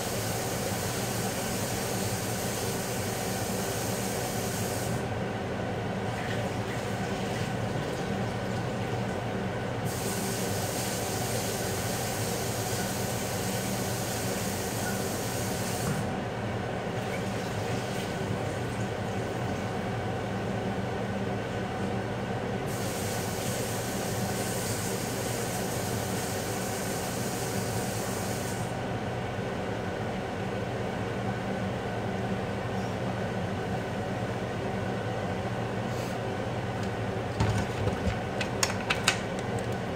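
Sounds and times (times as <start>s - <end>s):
mechanical hum with low buzz: 0.0s - 39.9s.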